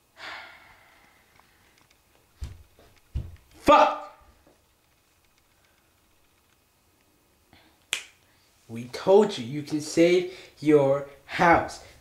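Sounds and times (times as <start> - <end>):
man speaking: 3.6 - 4.2, 8.7 - 12.0
finger snap: 7.8 - 8.3.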